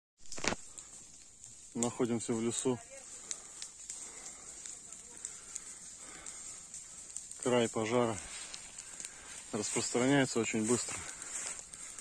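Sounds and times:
small snaps: 0.2 - 10.1, 10.7 - 12.0
ground fire crackling: 0.2 - 12.0.

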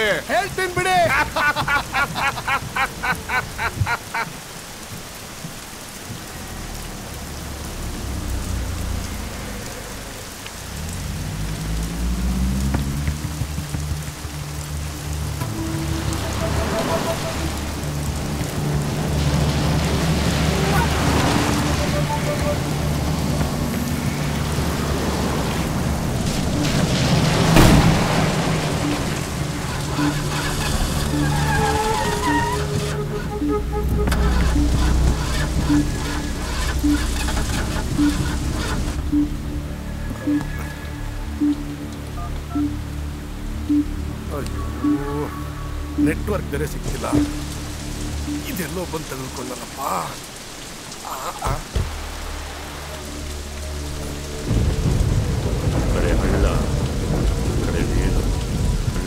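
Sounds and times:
heavy rain pouring: 0.0 - 59.0
man laughing: 0.6 - 4.4, 51.0 - 51.8
low sustained music notes: 6.2 - 50.5, 51.9 - 59.0
thunderclap: 15.2 - 33.0, 54.4 - 59.0.

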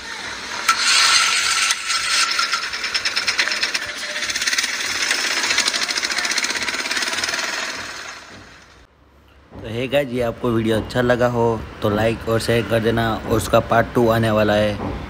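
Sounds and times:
fast rattle: 0.5 - 8.9.

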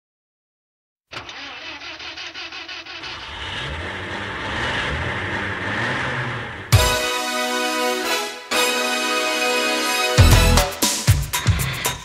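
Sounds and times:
starter motor cranking: 1.1 - 6.7
car engine running: 1.2 - 7.2.

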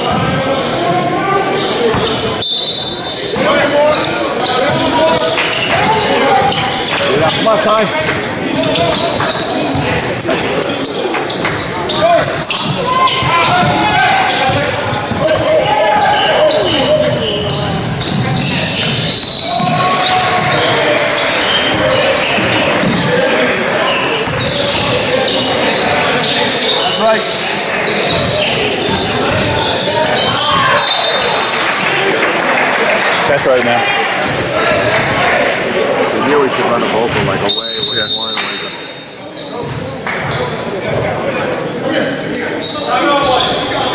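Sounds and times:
voices calling out: 0.0 - 40.7
basketball bouncing on court: 12.4 - 16.2, 16.9 - 20.7, 28.1 - 29.6, 39.6 - 41.0.

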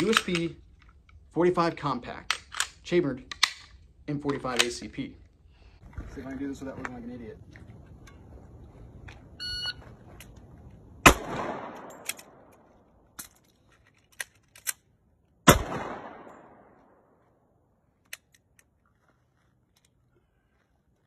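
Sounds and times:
shot timer beep: 9.4 - 9.8
pistol shots with echo: 11.0 - 12.6, 15.4 - 17.0.

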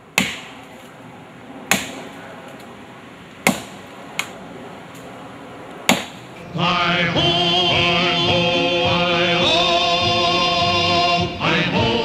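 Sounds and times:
axe chopping log: 0.2 - 0.9, 1.7 - 2.2, 3.4 - 4.4, 5.9 - 6.3.

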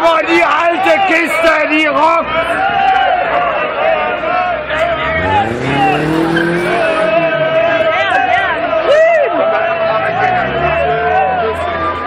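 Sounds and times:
people shouting and cheering: 0.0 - 12.0
car engine revving: 2.2 - 12.0.

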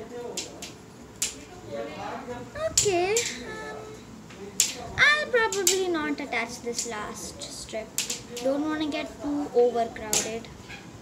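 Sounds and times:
person speaking indistinctly: 2.6 - 4.0
paper strip clicks: 8.0 - 8.5.

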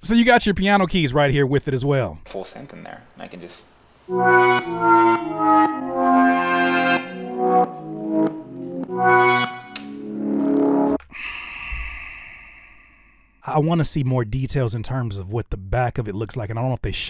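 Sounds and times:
brass-like synthesizer chords: 4.1 - 11.0.

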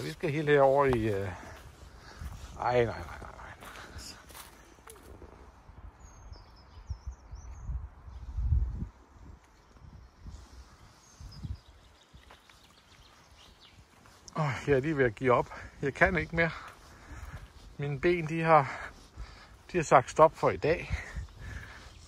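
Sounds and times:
footsteps on forest path: 0.0 - 7.7, 8.9 - 22.0
wind buffeting microphone: 0.0 - 14.2, 15.1 - 22.0
faint bird chirps: 4.2 - 8.5, 9.5 - 14.4.

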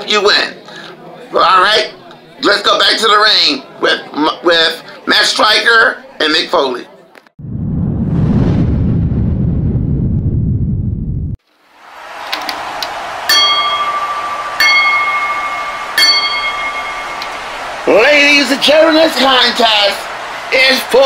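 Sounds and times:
crowd noise: 0.0 - 7.3, 11.8 - 21.0
loud low rumble: 7.4 - 11.4
ring bell struck: 13.3 - 17.6.

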